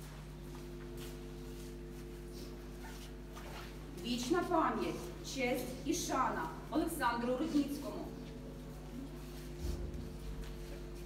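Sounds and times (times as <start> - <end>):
shuffling footsteps: 0.0 - 5.2, 6.1 - 11.0
low hum of held tones: 0.0 - 11.0.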